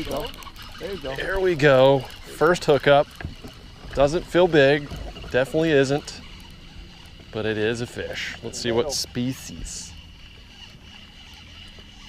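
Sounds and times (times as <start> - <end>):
boat motor rumbling: 0.0 - 12.0
fishing reel ticking: 0.0 - 12.0.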